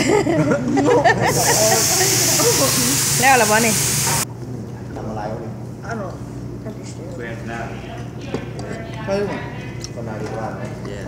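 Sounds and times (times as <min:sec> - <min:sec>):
liquid hissing on hot griddle: 0:01.3 - 0:04.2.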